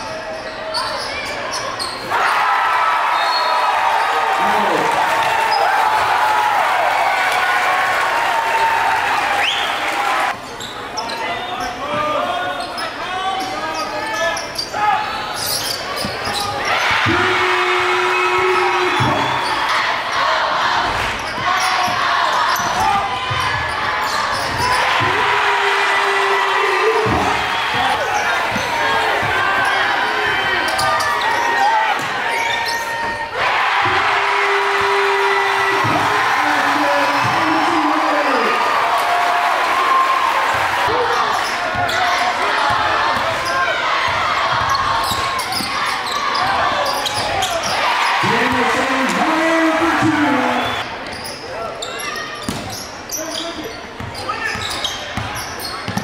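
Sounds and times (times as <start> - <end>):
crowd noise and chatter: 0.0 - 56.0.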